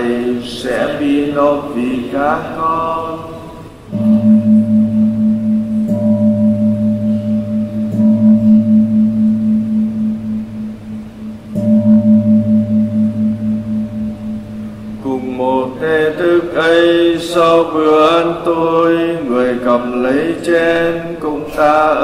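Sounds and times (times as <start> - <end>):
deep bell ringing: 3.8 - 20.9.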